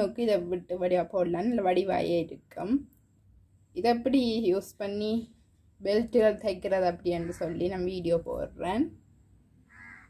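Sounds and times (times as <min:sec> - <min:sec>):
woman speaking: 0:00.0 - 0:03.0, 0:03.8 - 0:09.0.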